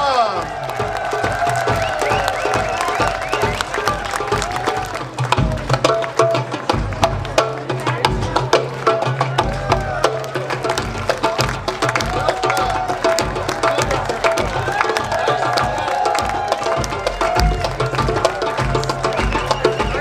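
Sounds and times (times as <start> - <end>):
hand percussion and drums beat: 0.0 - 20.0
live band playing dance music: 0.0 - 20.0.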